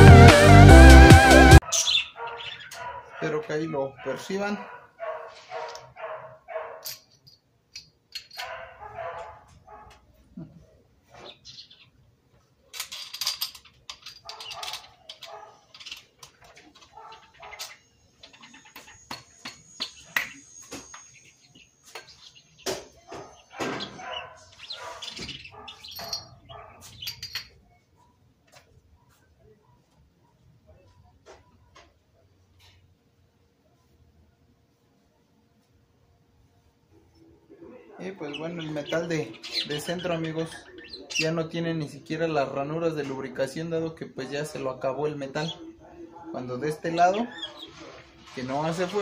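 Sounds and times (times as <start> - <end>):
animal calls: 1.6 - 6.8, 14.2 - 19.1, 22.8 - 27.2, 45.4 - 49.0
metal parts clinking: 6.8 - 8.6, 12.7 - 20.4, 25.7 - 27.6.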